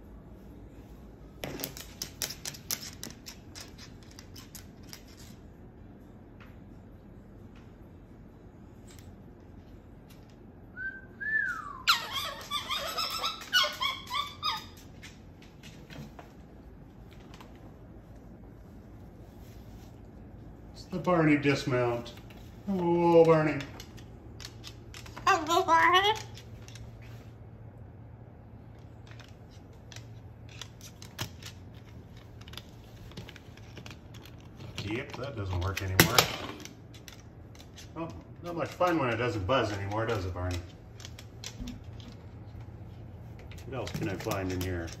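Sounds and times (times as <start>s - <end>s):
bird claws clicking on wood floor: 1.4s - 5.3s.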